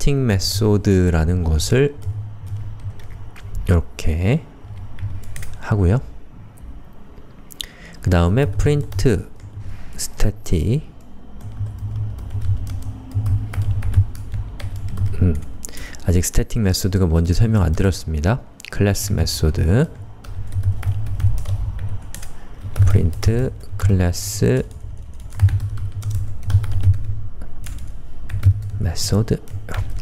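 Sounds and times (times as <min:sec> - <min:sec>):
low steady hum: 0:00.0 - 0:30.0
computer keyboard typing: 0:01.2 - 0:03.8, 0:04.6 - 0:05.6, 0:08.0 - 0:16.1, 0:17.4 - 0:18.0, 0:19.6 - 0:30.0.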